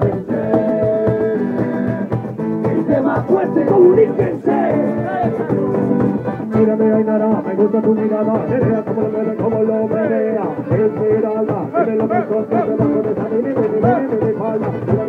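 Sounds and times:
group of people singing: 0.0 - 15.0
strummed acoustic guitar: 0.0 - 15.0.

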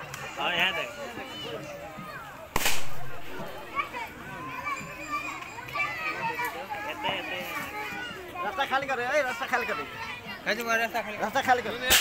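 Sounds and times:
children's voices and chatter: 0.0 - 12.0
loud sharp crack: 2.6 - 3.4.

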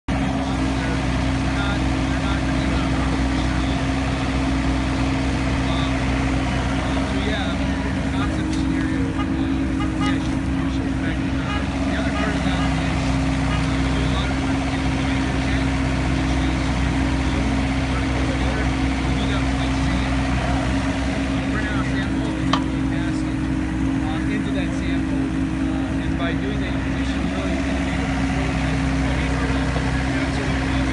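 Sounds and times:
excavator engine humming: 0.0 - 30.9.

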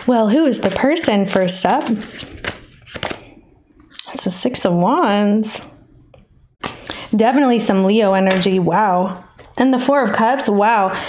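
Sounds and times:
cards shuffling on a tabletop: 0.0 - 3.3, 6.6 - 6.9.

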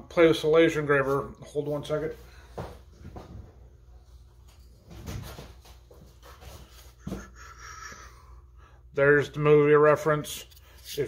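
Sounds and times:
faint knocks and rustles: 2.5 - 7.4.

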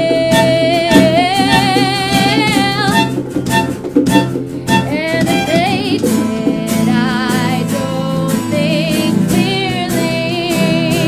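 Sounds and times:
drum hits: 0.2 - 8.0
rock band music: 2.4 - 6.7.

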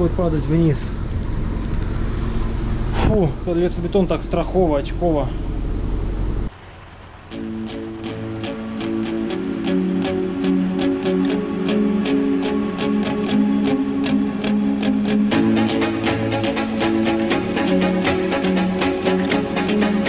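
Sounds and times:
plucked guitar music with beat: 7.3 - 20.0.

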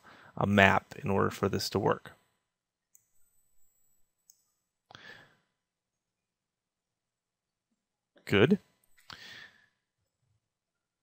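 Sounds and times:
breath at microphone: 4.9 - 5.5, 9.1 - 9.8.

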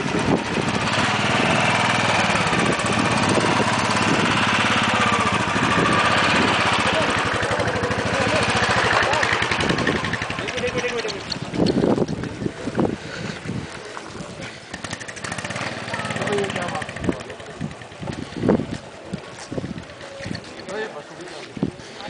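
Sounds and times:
gusty wind buffeting microphone: 0.0 - 20.6
voices in background: 4.4 - 22.0.

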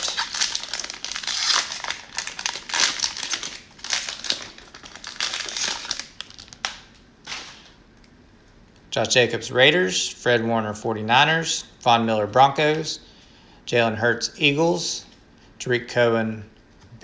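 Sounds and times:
plastic wrapper crinkling: 0.0 - 7.8.

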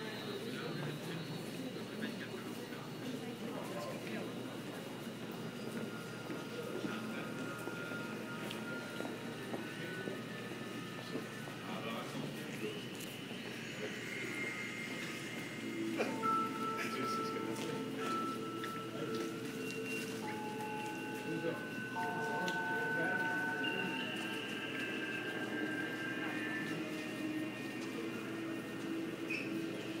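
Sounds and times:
faint steady high tones: 0.0 - 30.0
murmur of voices: 0.0 - 30.0.

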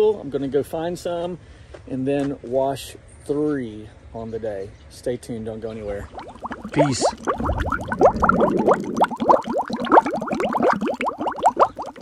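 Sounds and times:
rising bubbling bloops: 5.9 - 12.0.

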